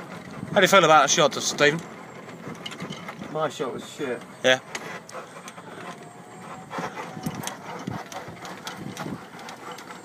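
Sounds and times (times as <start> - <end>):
clicks and rattles over bumps: 0.0 - 10.0
golf buggy running: 0.0 - 10.0.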